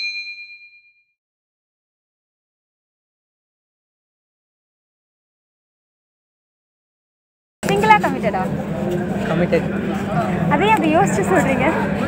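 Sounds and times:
bell ding: 0.0s - 1.1s.

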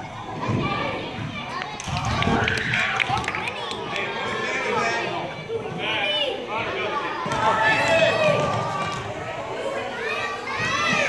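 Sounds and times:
voices talking and calling out: 0.0s - 11.0s.

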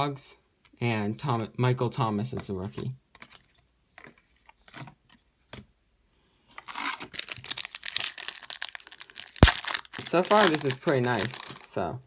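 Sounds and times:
foil pack crinkling and tearing: 6.6s - 11.8s.

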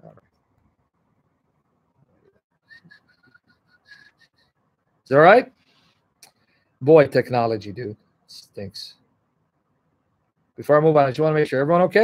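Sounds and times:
faint high whistle-like tone: 2.7s - 4.5s.

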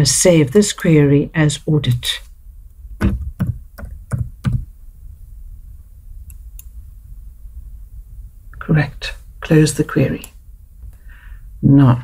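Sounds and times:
low steady hum: 0.0s - 12.0s
keystrokes on computer keyboard: 3.0s - 4.6s.

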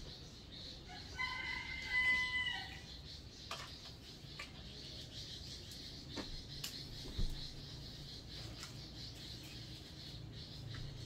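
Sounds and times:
rooster crowing: 0.9s - 2.8s.

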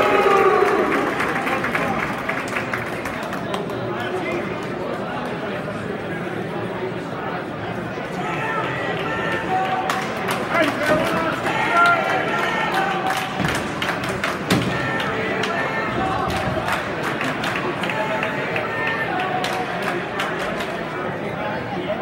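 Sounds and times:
murmur of many voices: 0.0s - 22.0s.

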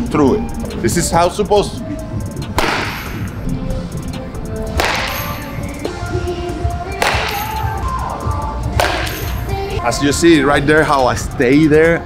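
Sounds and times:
background music: 0.0s - 12.0s
bat cracking against ball: 2.6s - 3.3s, 4.7s - 6.0s, 6.9s - 7.6s, 8.8s - 9.4s
bat swish: 4.7s - 6.0s, 6.9s - 7.6s, 8.8s - 9.4s.

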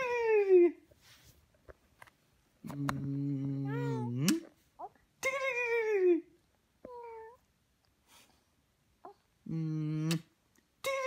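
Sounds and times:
infant cooing: 3.4s - 5.0s.

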